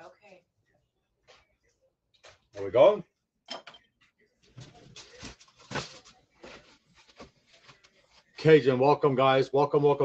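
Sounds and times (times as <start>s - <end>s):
paper packaging rustling: 4.4s - 8.4s.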